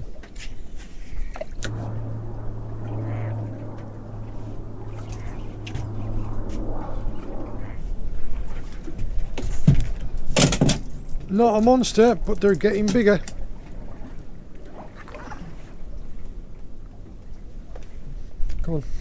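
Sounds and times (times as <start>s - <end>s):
outboard motor running: 1.6s - 8.0s.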